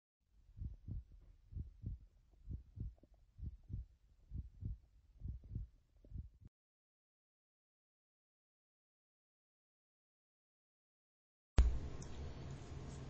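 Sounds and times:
heartbeat thumps: 0:00.6 - 0:06.5.

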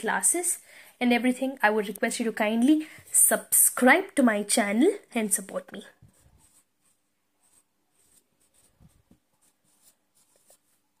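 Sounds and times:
marker writing on whiteboard: 0:06.0 - 0:11.0.

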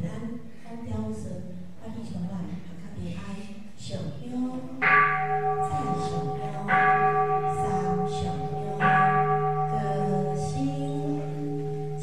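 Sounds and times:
temple bell ringing: 0:04.8 - 0:12.0.

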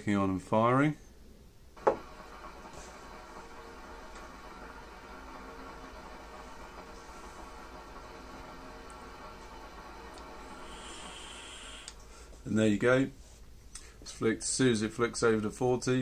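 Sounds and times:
electric heating element hum: 0:00.2 - 0:15.5.

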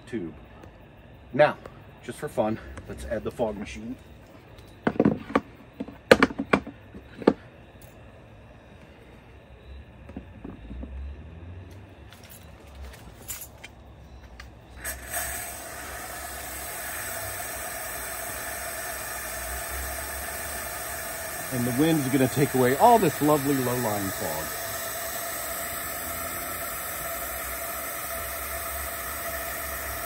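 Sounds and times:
fog machine hissing and humming: 0:14.2 - 0:30.0.

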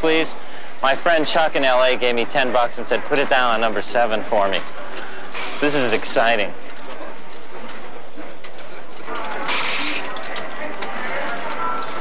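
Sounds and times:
crowd chatter: 0:01.0 - 0:12.0.

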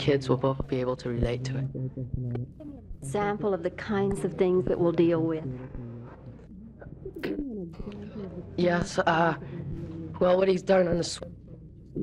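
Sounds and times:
person humming hmm: 0:01.6 - 0:02.9, 0:05.6 - 0:08.5, 0:09.5 - 0:10.2.

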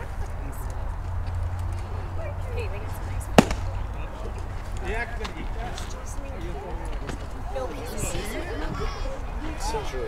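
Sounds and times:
faint distant voices: 0:00.0 - 0:10.0
baseball bat crack: 0:03.3 - 0:04.0.

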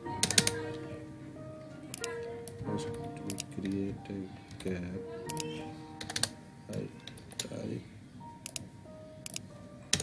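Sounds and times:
computer keyboard typing: 0:00.2 - 0:00.6, 0:03.2 - 0:03.8, 0:05.3 - 0:06.4, 0:09.2 - 0:10.0.

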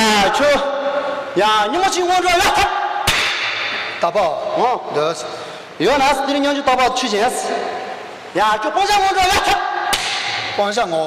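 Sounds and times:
man speaking: 0:04.0 - 0:09.7
hand clap: 0:09.9 - 0:10.3.

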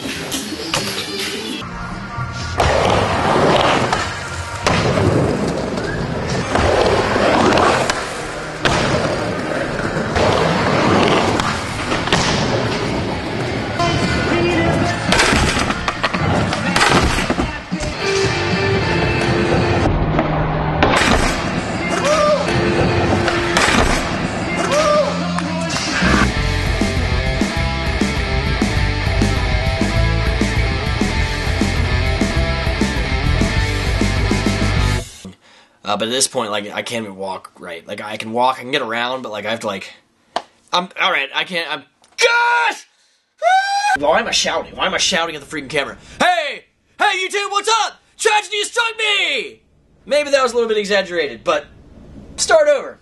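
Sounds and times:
skateboards rolling on wooden ramps: 0:02.6 - 0:17.6
loud music: 0:13.7 - 0:35.1.

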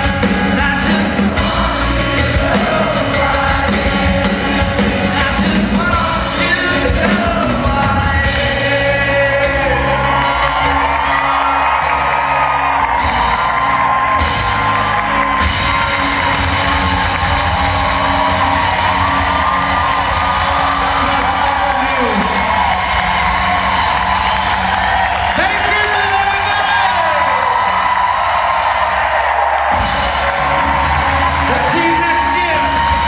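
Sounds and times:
person singing: 0:00.0 - 0:11.2
live rock band playing: 0:00.0 - 0:33.0.

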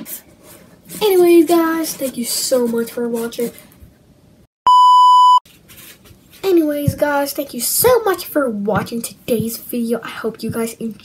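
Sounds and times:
censor bleep: 0:04.7 - 0:05.4.

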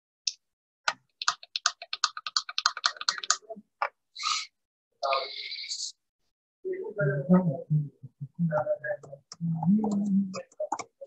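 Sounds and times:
rapid keyboard typing: 0:00.9 - 0:03.5, 0:09.7 - 0:11.0.

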